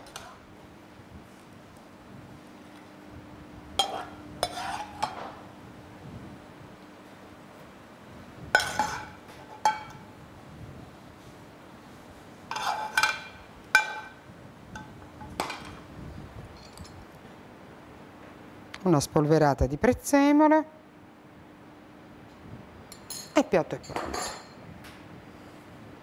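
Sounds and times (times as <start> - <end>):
faint steady hum: 0.0 - 26.0
metal spoon clinking on pan and plate: 3.8 - 5.2, 8.6 - 10.0, 12.5 - 14.2, 22.9 - 24.6.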